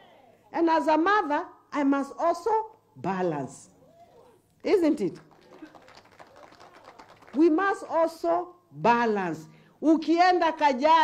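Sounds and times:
woman speaking over public address: 0:00.5 - 0:03.8, 0:04.6 - 0:05.3, 0:07.3 - 0:11.0.

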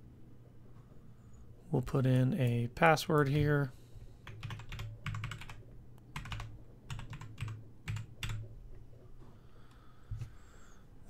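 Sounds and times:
keyboard typing: 0:04.2 - 0:08.5.

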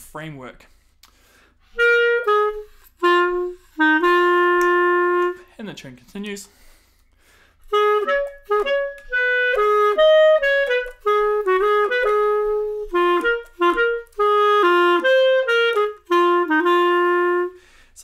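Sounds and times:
solo clarinet jazz waltz: 0:01.7 - 0:05.5, 0:07.6 - 0:17.6.

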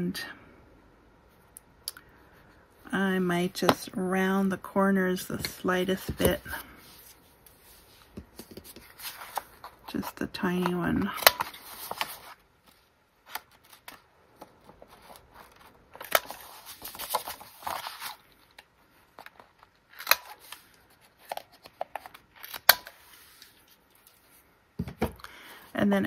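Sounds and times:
paper sliding and rustling: 0:06.8 - 0:09.8, 0:11.4 - 0:21.1.

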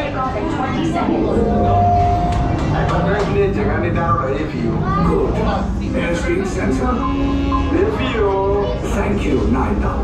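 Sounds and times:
short steady tone: 0:01.4 - 0:02.5.

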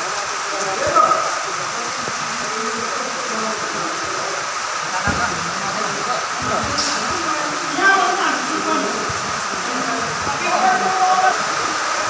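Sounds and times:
distant voices: 0:00.0 - 0:12.0
steady rushing hall noise: 0:00.0 - 0:12.0.

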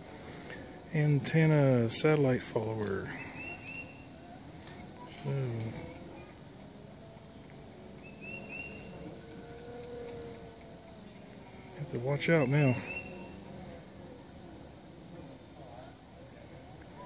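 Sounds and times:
stepper motors whining: 0:00.0 - 0:17.0.

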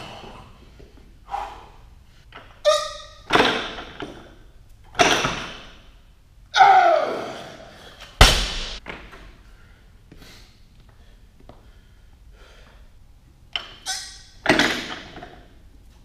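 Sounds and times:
person shouting: 0:06.6 - 0:07.4
barbell thudding on rubber floor: 0:08.2 - 0:09.1.

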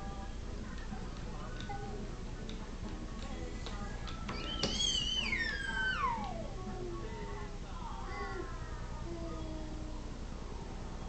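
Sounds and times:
children's tv music from television: 0:00.0 - 0:11.0.

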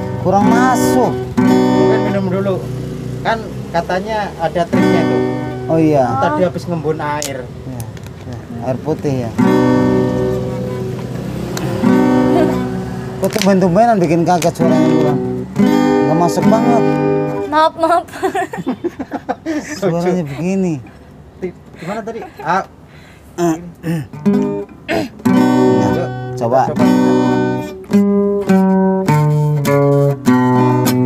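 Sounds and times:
acoustic guitar chord strummed: 0:00.0 - 0:03.6, 0:04.3 - 0:06.9, 0:09.4 - 0:20.4, 0:23.4 - 0:31.0.

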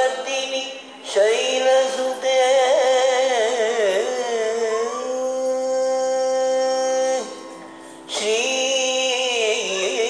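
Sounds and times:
man singing a long held note: 0:00.0 - 0:10.0.

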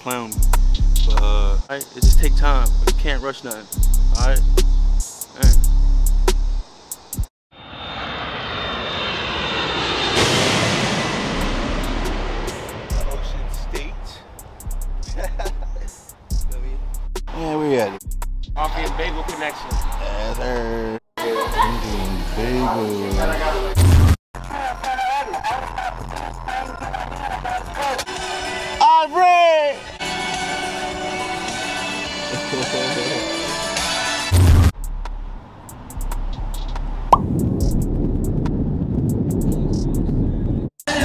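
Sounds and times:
faint regular beat: 0:00.0 - 0:07.3, 0:12.5 - 0:23.8, 0:34.8 - 0:37.9
hip-hop music: 0:00.0 - 0:07.3, 0:11.4 - 0:35.3, 0:35.9 - 0:37.8
steady low bass: 0:00.4 - 0:03.2, 0:03.8 - 0:06.6, 0:11.3 - 0:24.5, 0:34.4 - 0:40.3
loud rushing roar: 0:07.5 - 0:14.6.

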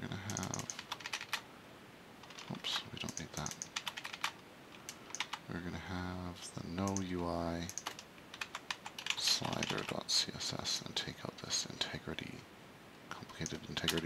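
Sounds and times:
typing on computer keyboard: 0:00.3 - 0:01.4, 0:02.2 - 0:05.4, 0:06.8 - 0:10.0, 0:13.4 - 0:14.0.

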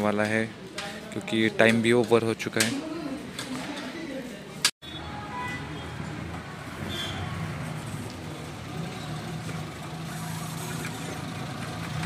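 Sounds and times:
engine running low hum: 0:06.1 - 0:12.0.

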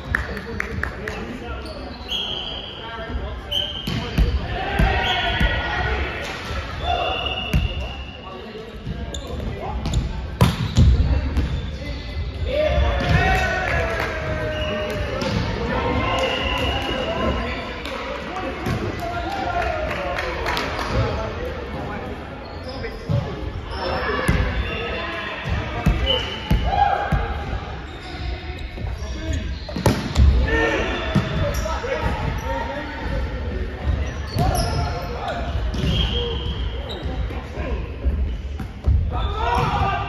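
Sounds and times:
sneaker squeaks: 0:01.5 - 0:05.6, 0:06.7 - 0:13.2, 0:22.2 - 0:40.0
players shouting: 0:04.2 - 0:07.5, 0:39.1 - 0:40.0.

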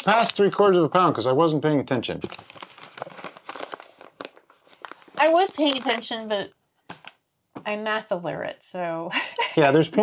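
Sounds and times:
paper bag crinkling: 0:02.2 - 0:06.4.

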